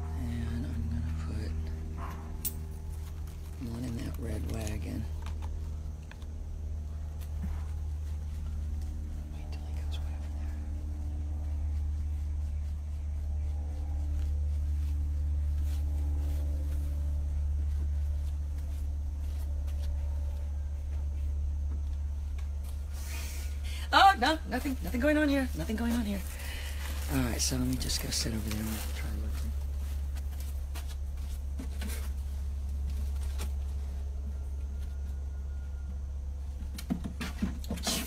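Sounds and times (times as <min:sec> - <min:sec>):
steady low rumble: 0:00.0 - 0:36.6
faint even hum: 0:00.0 - 0:38.0.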